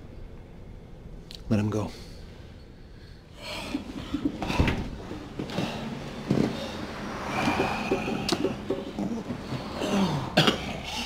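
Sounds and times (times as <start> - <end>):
man coughing: 8.1 - 11.0.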